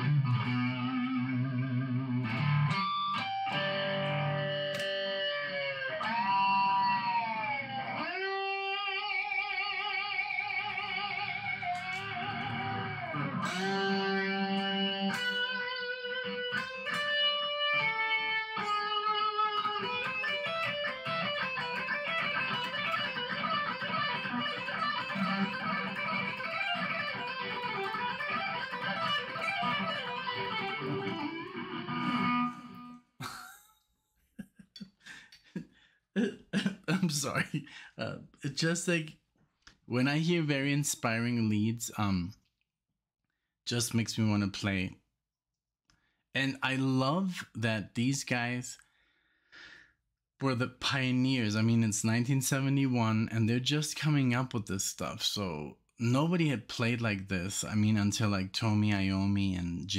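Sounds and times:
electric guitar lead: 0:00.0 - 0:33.0.

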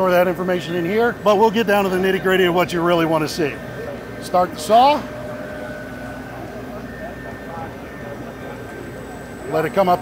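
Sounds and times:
background voices chattering: 0:00.0 - 0:10.0.

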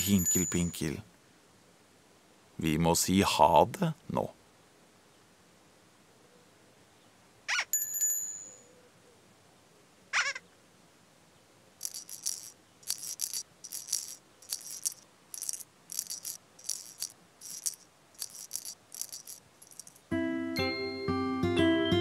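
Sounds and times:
bell-like ding: 0:07.8 - 0:08.7
shaker rattles: 0:11.8 - 0:20.1.

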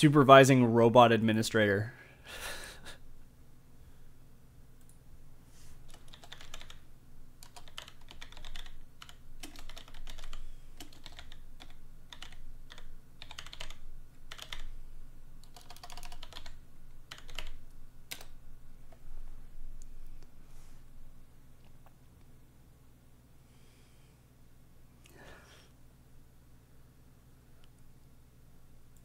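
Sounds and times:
typing on computer keyboard: 0:05.9 - 0:06.8, 0:07.4 - 0:14.7, 0:15.4 - 0:18.4.

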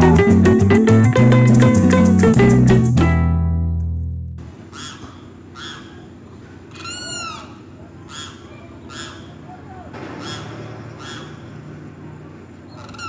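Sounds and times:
folk ensemble chord ringing: 0:00.0 - 0:04.2
bird calling: 0:04.7 - 0:11.7, 0:12.6 - 0:13.0.

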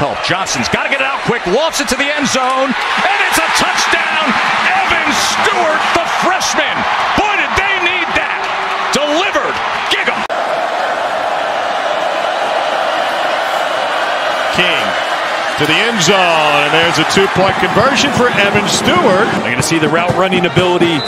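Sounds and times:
excited voices shouting: 0:00.0 - 0:19.3
stadium crowd cheering: 0:00.0 - 0:21.0.

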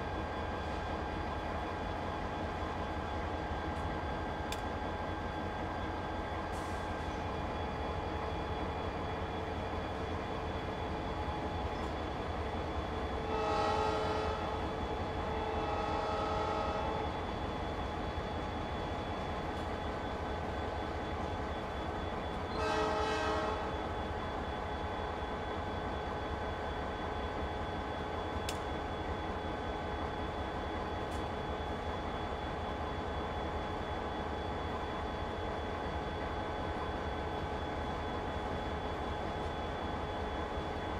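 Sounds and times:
diesel locomotive horn blasts: 0:13.2 - 0:17.3, 0:22.3 - 0:23.9.

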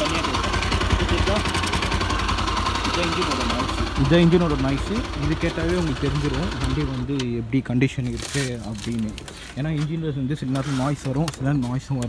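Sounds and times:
man talking: 0:02.8 - 0:12.0.

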